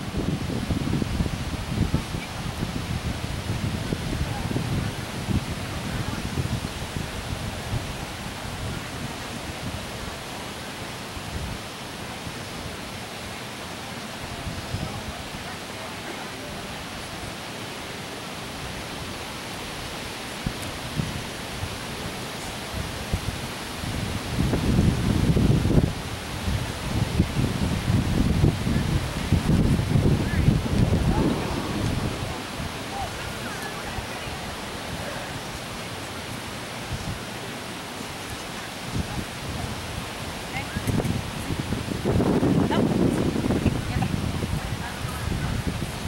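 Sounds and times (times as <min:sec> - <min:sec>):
low wind buffeting gusts: 0:00.0 - 0:15.7, 0:16.4 - 0:46.0
wind hiss on microphone: 0:00.0 - 0:46.0.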